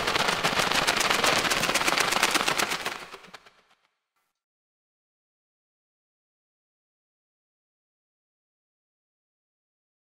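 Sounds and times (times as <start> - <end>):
pigeon wings flapping: 0.0 - 3.9.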